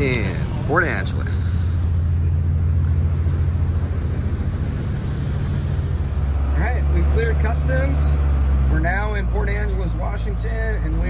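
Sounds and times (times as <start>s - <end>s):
wind and water hiss: 0.0s - 8.0s
low ferry engine drone: 0.0s - 11.0s.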